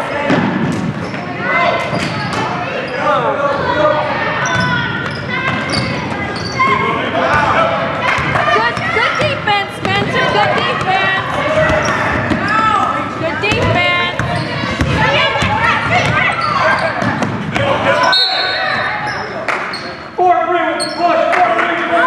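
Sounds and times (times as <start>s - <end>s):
voices calling out: 1.0s - 21.4s
basketball dribbling on wooden floor: 13.4s - 16.2s.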